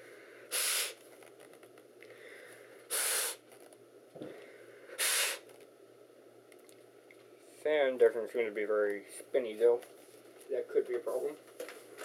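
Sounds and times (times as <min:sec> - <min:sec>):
bursts of blown air: 0:00.5 - 0:01.0, 0:02.9 - 0:03.4, 0:05.0 - 0:05.5.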